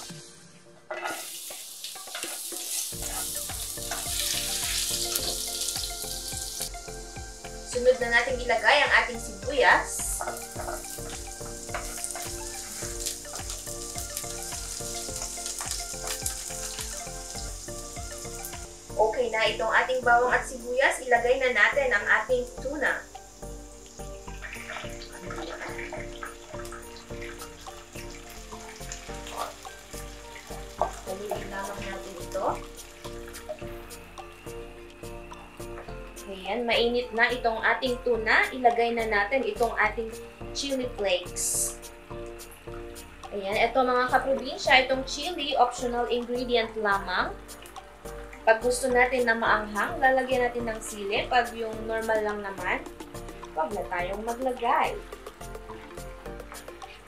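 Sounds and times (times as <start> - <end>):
background music: 0.0 - 57.0
garlic sizzling in hot oil: 0.0 - 57.0
spatula spreading in pan: 0.9 - 6.7, 10.0 - 18.6.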